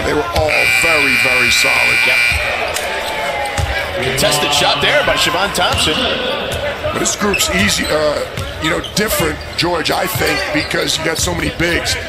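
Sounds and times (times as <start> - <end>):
shot-clock buzzer: 0.5 - 2.8.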